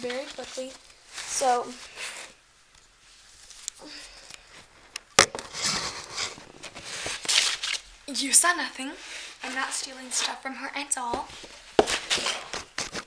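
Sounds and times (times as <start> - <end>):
tissues rustling: 0.0 - 8.1.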